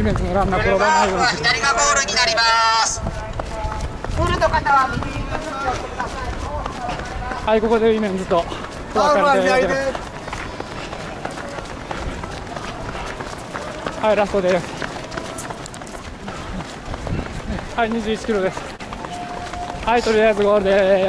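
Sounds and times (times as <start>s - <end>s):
running footsteps on asphalt: 0.0s - 21.0s.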